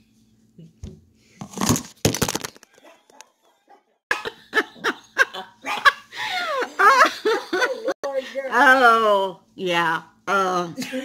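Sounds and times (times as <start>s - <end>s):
handling noise crackle: 1.4s - 3.3s.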